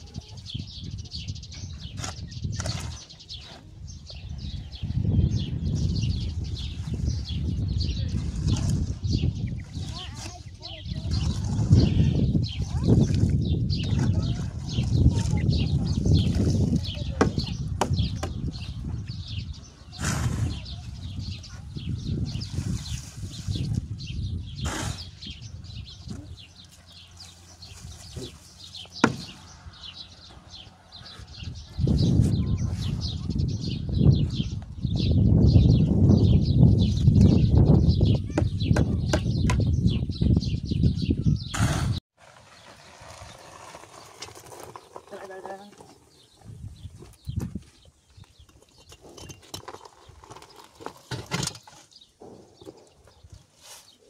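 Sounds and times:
shovel scraping in metal wheelbarrow: 19.9s - 20.8s.

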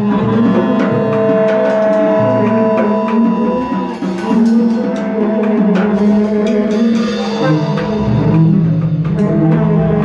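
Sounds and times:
bowed double bass: 0.0s - 10.0s
drum strikes: 0.0s - 10.0s
trumpet: 0.0s - 10.0s.

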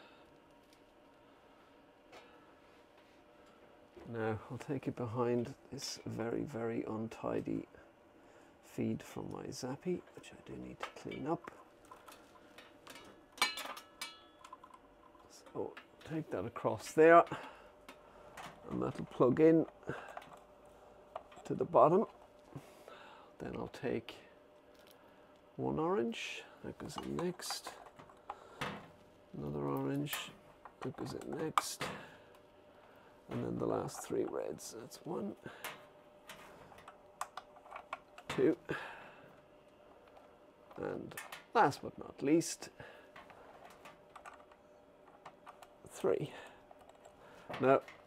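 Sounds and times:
cables rustling and clicking: 0.2s - 1.2s, 9.2s - 22.8s, 24.4s - 25.6s, 26.6s - 48.0s.

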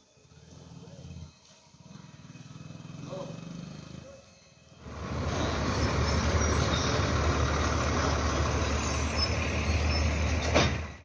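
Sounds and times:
heavy road vehicle rumble: 4.8s - 11.0s.

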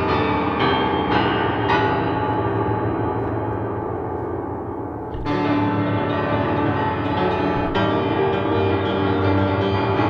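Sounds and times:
piano chords ringing: 0.0s - 10.0s.

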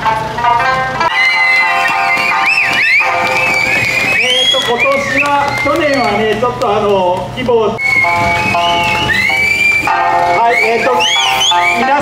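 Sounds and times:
folk music: 0.0s - 12.0s.

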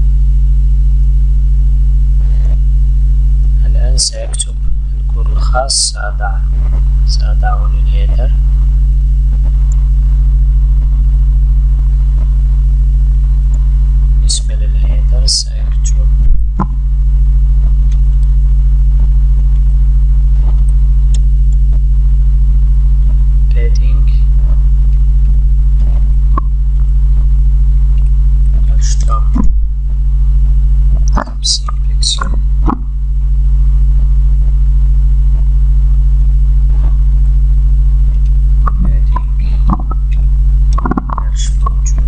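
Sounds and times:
low electrical mains hum: 0.0s - 42.0s.

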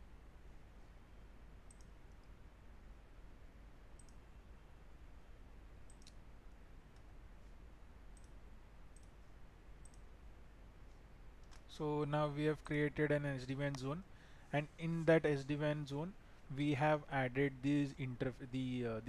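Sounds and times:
faint room hiss: 0.0s - 19.0s
computer mouse clicks: 1.7s - 2.4s, 4.0s - 4.2s, 5.9s - 6.2s, 6.9s - 10.1s.

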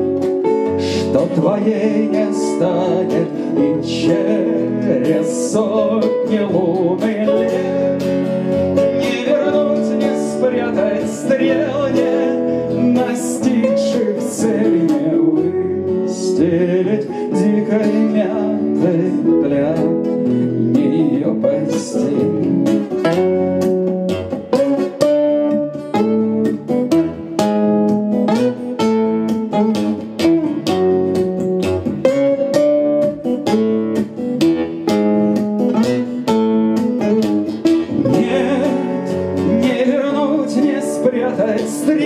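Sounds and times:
acoustic guitars playing: 0.0s - 42.0s.

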